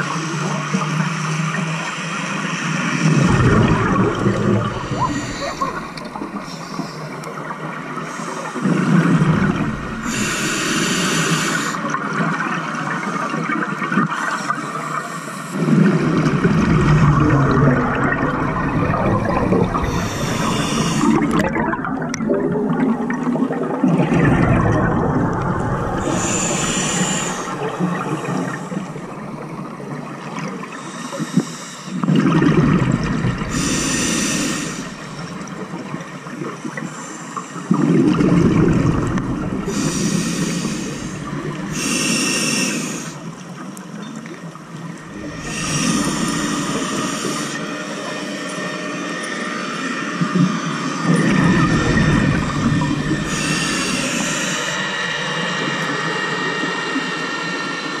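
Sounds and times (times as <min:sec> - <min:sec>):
rush of bubbles: 0:02.9 - 0:10.6, 0:15.6 - 0:30.8, 0:32.0 - 0:36.8, 0:37.6 - 0:43.6, 0:44.9 - 0:47.8, 0:51.0 - 0:55.3
regulator hiss on inhale: 0:03.7 - 0:07.4, 0:08.0 - 0:11.9, 0:19.8 - 0:21.4, 0:25.9 - 0:29.2, 0:30.7 - 0:32.1, 0:33.4 - 0:35.7, 0:36.8 - 0:37.8, 0:39.6 - 0:43.5, 0:45.2 - 0:48.7, 0:51.7 - 0:55.5.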